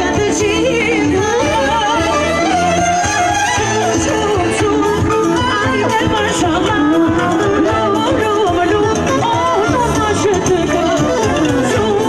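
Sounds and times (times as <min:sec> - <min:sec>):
folk dance music: 0:00.0 - 0:12.0.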